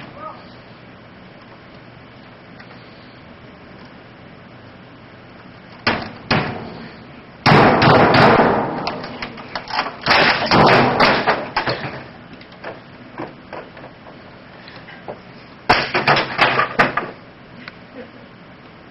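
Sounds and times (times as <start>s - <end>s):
hits and clattering: 7.4s - 14.0s, 15.7s - 17.2s.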